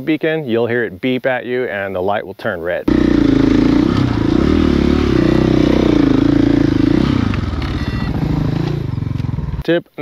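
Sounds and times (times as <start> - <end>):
dirt bike engine revving: 2.9 - 9.6.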